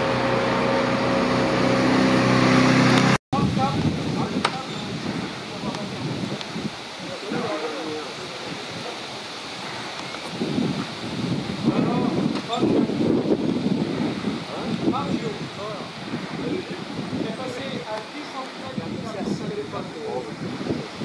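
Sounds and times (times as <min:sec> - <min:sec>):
wind noise on microphone: 0:00.0 - 0:21.0
indistinct voices talking: 0:03.4 - 0:21.0.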